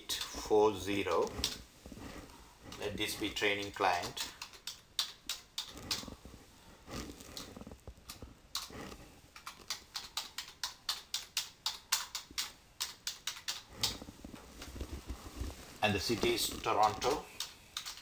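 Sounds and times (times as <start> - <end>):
computer keyboard typing: 1.1 - 1.6, 2.7 - 6.2, 7.4 - 8.7, 9.3 - 14.1, 16.0 - 18.0.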